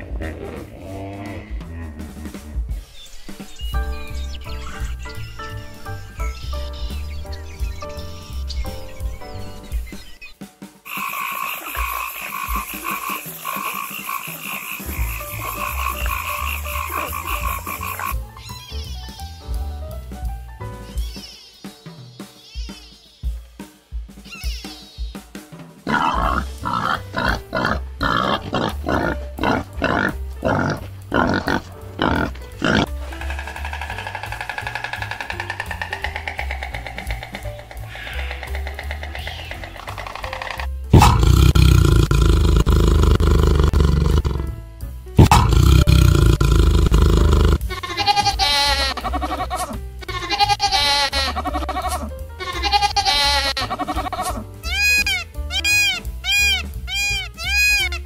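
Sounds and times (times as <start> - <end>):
wild boars grunting: 0.0 - 2.9, 10.9 - 18.2, 25.8 - 44.6, 45.2 - 54.6
background music: 0.0 - 58.0
repeated high calls: 52.7 - 58.0.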